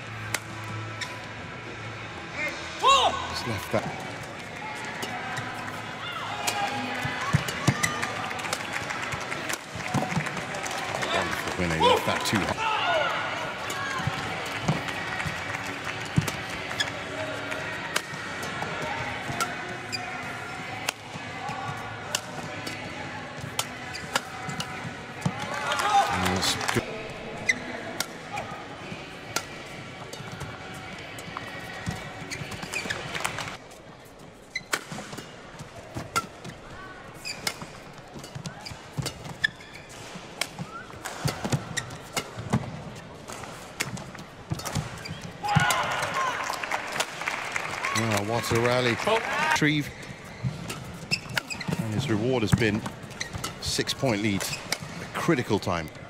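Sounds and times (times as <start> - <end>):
shoes squeaking on court: 3.8 - 12.6, 13.6 - 45.8, 49.6 - 56.0.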